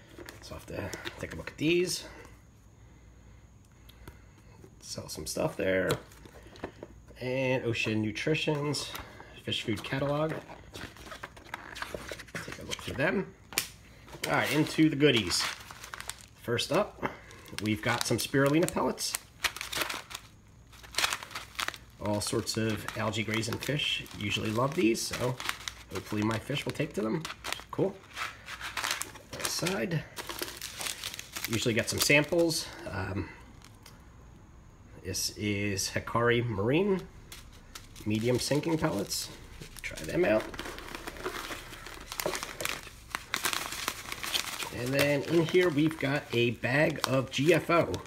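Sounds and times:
plastic pouch crinkling: 0:07.7 - 0:32.8, 0:36.8 - 0:48.0.

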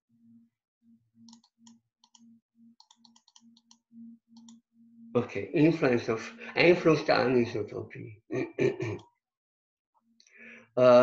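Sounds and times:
computer mouse clicks: 0:01.2 - 0:04.6.

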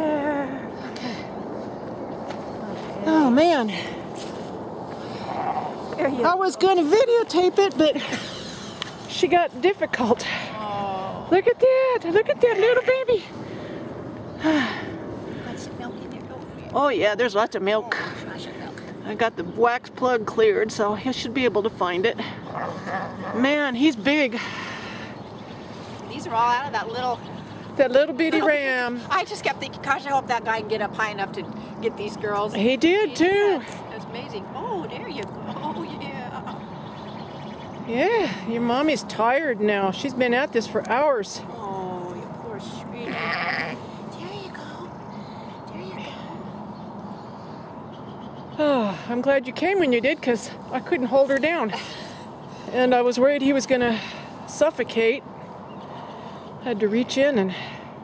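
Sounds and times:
sheep bleating: 0:43.0 - 0:43.9.

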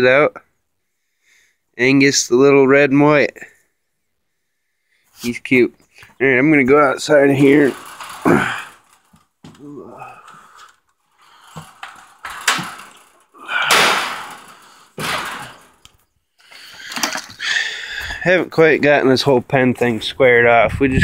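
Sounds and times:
knocking and scraping of metal gate: 0:06.5 - 0:17.4.

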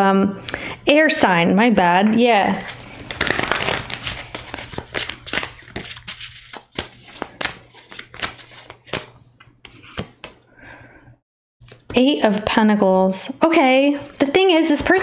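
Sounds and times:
cards being shuffled: 0:02.6 - 0:10.4.

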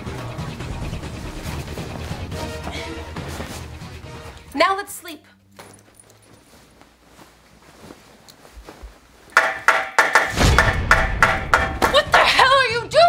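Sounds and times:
hammer striking wooden bed frame: 0:09.3 - 0:12.0.

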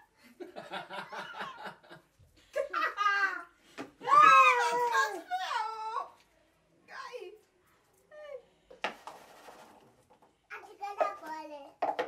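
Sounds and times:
high-pitched young cry: 0:03.0 - 0:06.1
cup knocking on tabletop: 0:11.8 - 0:12.0.

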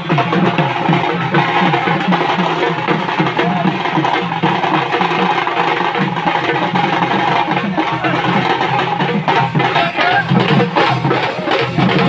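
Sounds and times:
drummers playing barrel drums: 0:00.0 - 0:12.0.

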